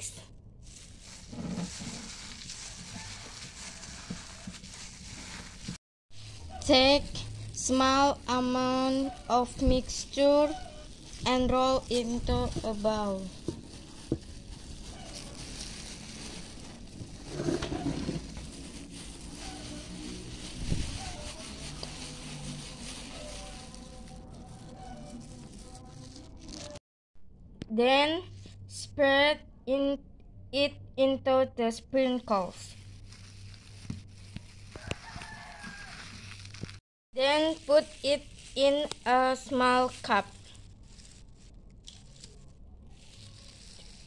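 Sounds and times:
plastic gloves crinkling: 0.0 - 26.8, 32.3 - 44.0
rooster crowing: 34.7 - 36.2.

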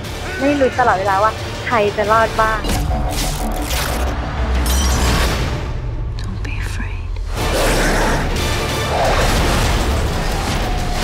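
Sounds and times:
woman whispering: 6.1 - 7.3.

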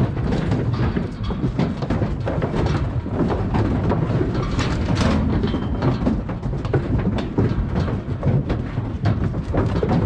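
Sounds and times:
hooves clattering on metal floor: 0.0 - 10.0
metal panels rattling: 0.0 - 10.0.

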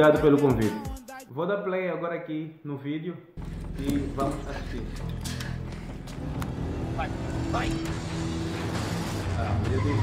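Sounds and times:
tense background music: 3.4 - 10.0.

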